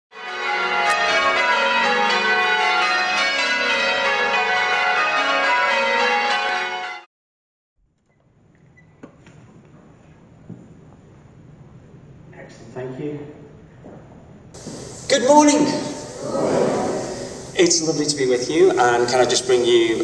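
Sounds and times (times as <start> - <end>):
church bells ringing: 0.1 - 7.1, 14.6 - 20.0.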